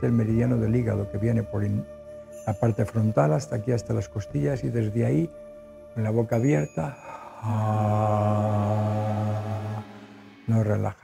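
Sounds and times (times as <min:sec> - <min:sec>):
man chanting low ahh: 0:00.0 - 0:11.0.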